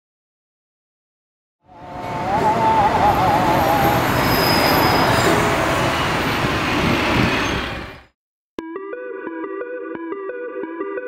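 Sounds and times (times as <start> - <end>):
city street traffic: 1.6 - 8.2
wavering high squeal: 2.0 - 7.8.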